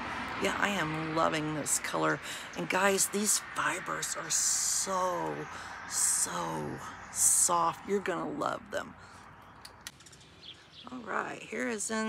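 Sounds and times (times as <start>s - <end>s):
bird chirps: 9.1s - 11.2s.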